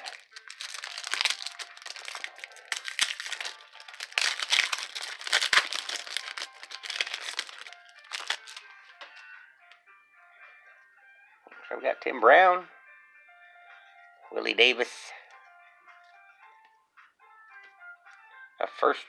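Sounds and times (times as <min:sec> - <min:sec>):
foil wrapper crinkling and tearing: 0:00.0 - 0:08.6
faint music: 0:00.0 - 0:19.0.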